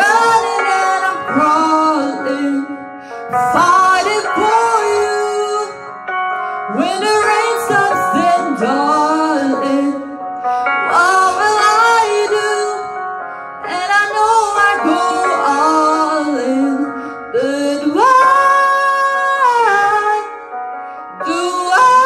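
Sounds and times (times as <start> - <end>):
woman singing slow melody: 0.0 - 5.9, 6.7 - 10.2, 10.8 - 13.0, 13.6 - 20.5, 21.2 - 22.0.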